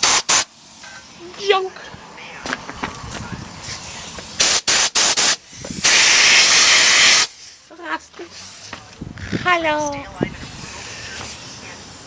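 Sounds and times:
aerosol spray hissing: 0.0 - 1.6, 3.4 - 8.7, 10.3 - 12.0.

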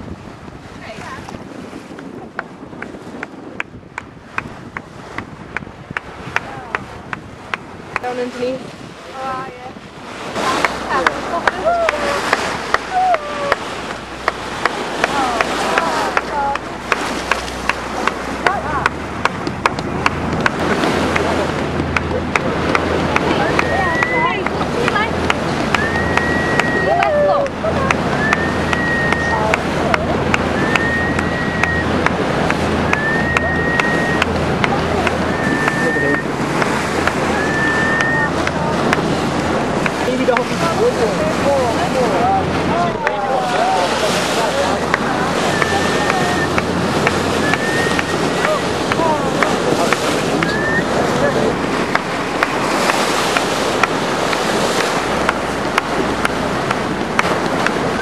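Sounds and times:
water rushing along boat hull: 0.0 - 58.0
wind on microphone: 0.0 - 58.0
low engine drone: 10.7 - 58.0
short high whistle-like tones: 25.7 - 27.1, 28.2 - 29.5, 30.5 - 31.9, 32.9 - 34.3, 35.2 - 36.3, 37.3 - 38.4, 47.4 - 48.4, 50.4 - 51.0.

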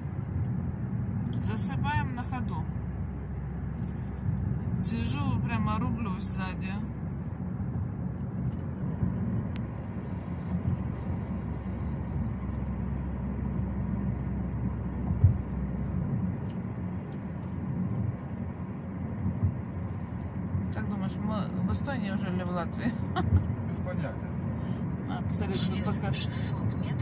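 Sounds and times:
tyre and engine rumble: 0.0 - 27.0.

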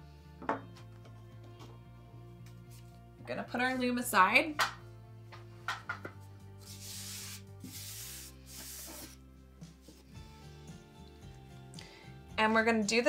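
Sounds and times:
quiet background music: 0.0 - 13.0
cardboard sliding on wooden table: 6.8 - 9.2.

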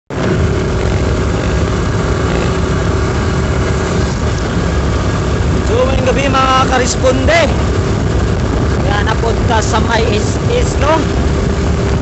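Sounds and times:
road and wind noise: 0.1 - 12.0
vehicle engine running: 0.1 - 12.0
man's voice: 5.6 - 7.7, 8.8 - 11.2.

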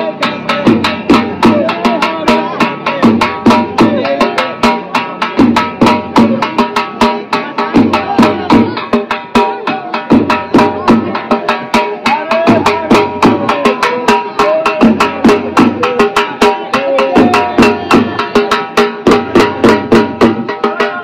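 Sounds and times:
dhol drum beating: 0.0 - 21.0.

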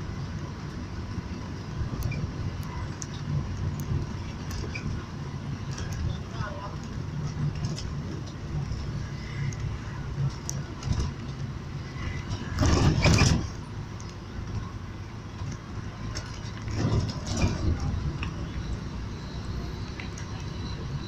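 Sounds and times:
vehicle road and engine rumble: 0.0 - 21.0.

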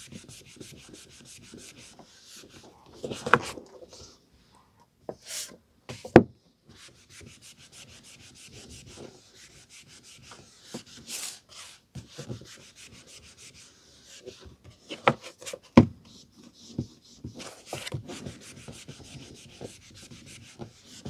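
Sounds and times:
cloth rubbing book cover: 16.2 - 21.0.

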